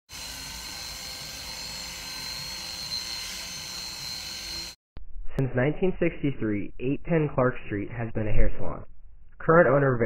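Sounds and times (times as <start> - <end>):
electric hair clippers whirring: 0.1 - 4.8.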